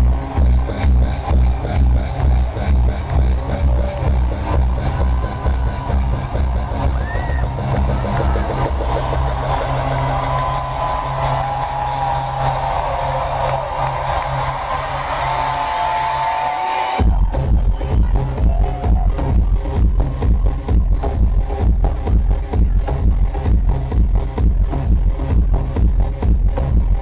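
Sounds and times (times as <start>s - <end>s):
electro dance music over club speakers: 0.0s - 27.0s.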